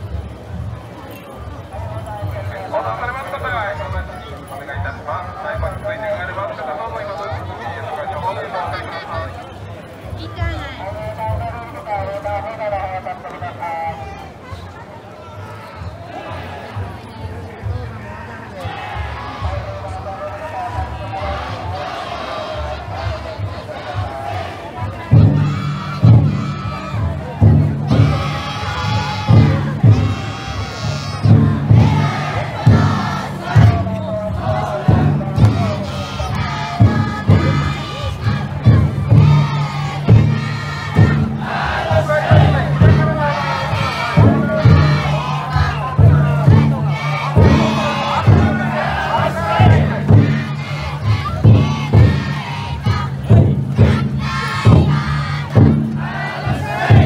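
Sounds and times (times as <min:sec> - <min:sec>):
crowd shouting rhythmically: 0:15.4 - 0:17.0, 0:18.0 - 0:57.0
taiko drum beating: 0:20.7 - 0:57.0.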